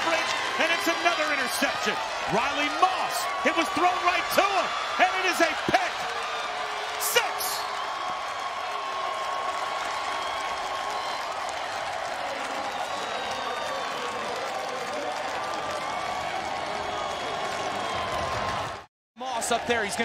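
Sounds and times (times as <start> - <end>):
crowd cheering and applause: 0.0 - 20.0.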